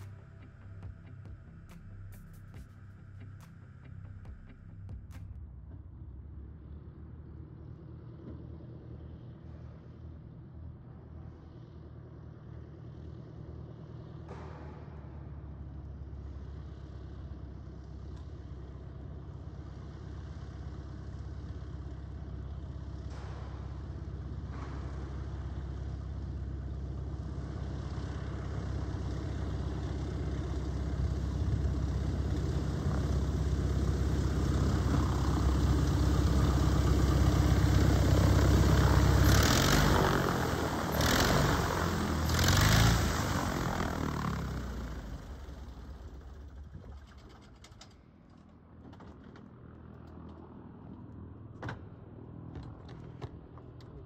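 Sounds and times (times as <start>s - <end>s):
biplane engine and propeller: 0.0s - 54.0s.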